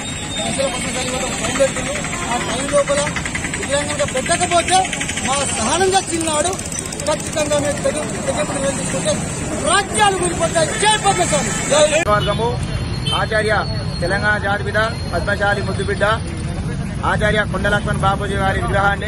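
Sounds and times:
road traffic: 0:00.0 - 0:19.0
man talking: 0:00.4 - 0:16.2.

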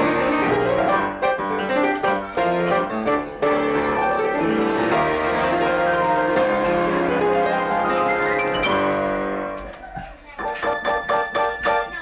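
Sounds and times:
piano chords ringing: 0:00.0 - 0:09.7, 0:10.4 - 0:12.0.

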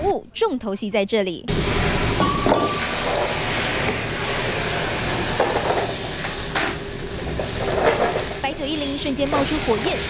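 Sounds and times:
steak sizzling in a pan: 0:01.5 - 0:10.0.

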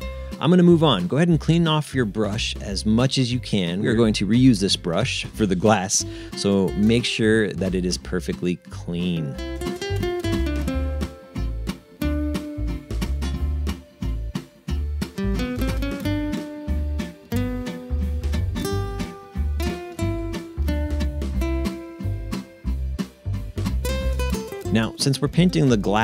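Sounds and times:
strummed guitar music: 0:00.0 - 0:26.0
low beat: 0:09.4 - 0:25.9.

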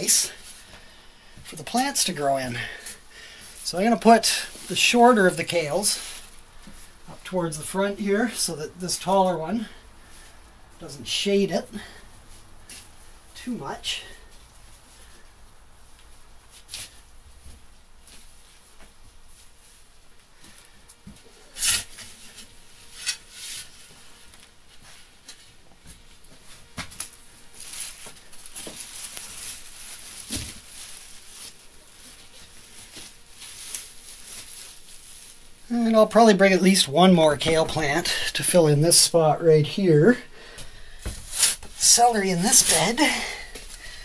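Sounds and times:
rustling leaves and soil: 0:00.0 - 0:20.8, 0:26.0 - 0:44.0.

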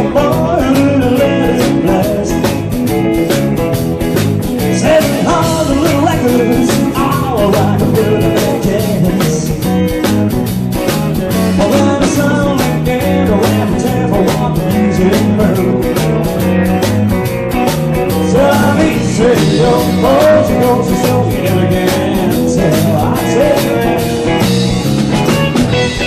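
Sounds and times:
man singing: 0:00.0 - 0:03.3, 0:04.5 - 0:10.0, 0:11.2 - 0:16.4, 0:18.0 - 0:24.6
bass guitar: 0:00.0 - 0:26.0
drums: 0:00.0 - 0:26.0
electric guitar: 0:00.0 - 0:26.0.

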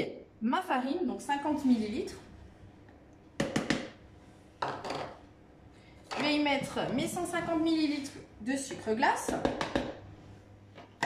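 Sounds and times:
plastic cup knocking on jug: 0:03.4 - 0:03.9, 0:09.3 - 0:10.0.

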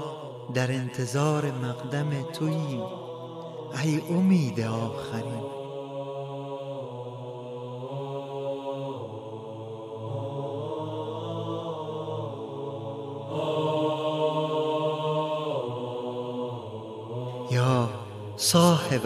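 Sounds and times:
wordless chanted vocals: 0:00.0 - 0:19.0.

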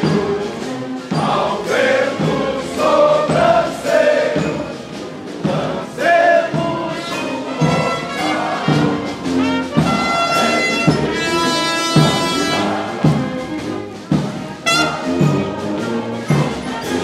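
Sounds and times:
men singing in unison: 0:00.0 - 0:09.1, 0:10.2 - 0:13.4.

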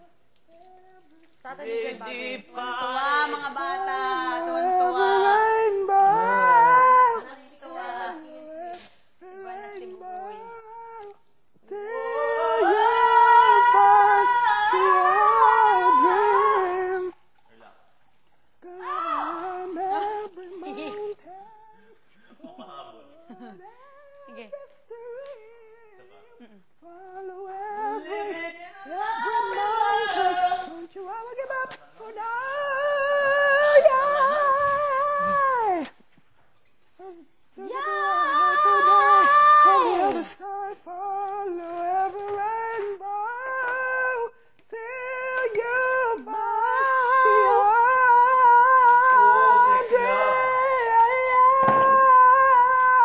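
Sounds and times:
high voice singing wordlessly: 0:00.0 - 0:17.6, 0:18.6 - 0:22.0, 0:23.2 - 0:36.2, 0:36.9 - 0:53.0
person singing high note: 0:45.1 - 0:53.0.

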